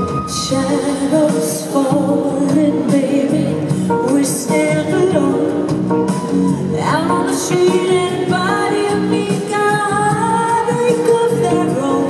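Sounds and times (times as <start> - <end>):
live pop band: 0.0 - 12.0.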